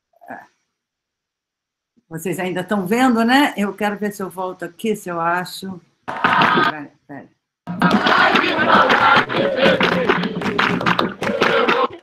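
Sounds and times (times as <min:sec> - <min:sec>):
clapping: 0:06.1 - 0:06.7, 0:07.7 - 0:12.0
group singing: 0:06.1 - 0:06.7, 0:07.7 - 0:12.0
crowd voices: 0:07.7 - 0:12.0
hand drums: 0:07.7 - 0:12.0.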